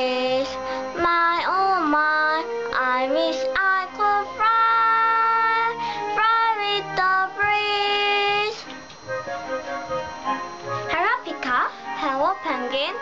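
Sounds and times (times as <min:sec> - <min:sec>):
child singing long notes: 0:00.0 - 0:08.6
backing track: 0:00.0 - 0:13.0.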